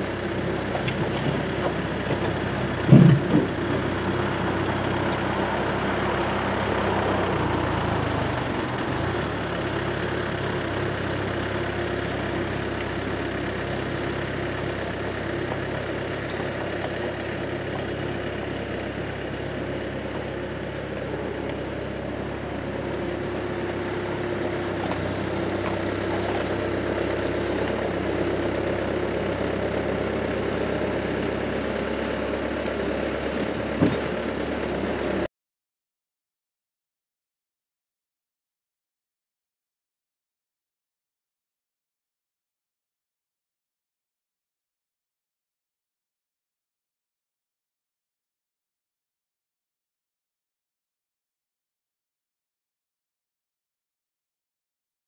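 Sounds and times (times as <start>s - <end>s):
diesel loader engine running: 0.0s - 35.3s
loud clunk: 2.8s - 3.6s, 33.8s - 34.1s.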